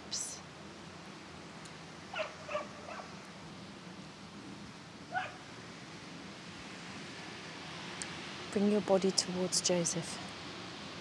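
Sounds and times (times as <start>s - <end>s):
quiet open-air background: 0.0s - 11.0s.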